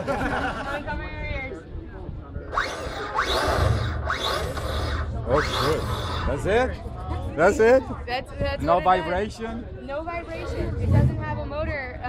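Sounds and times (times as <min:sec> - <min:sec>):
electric motorcycle motor whining: 0:02.5 - 0:06.7.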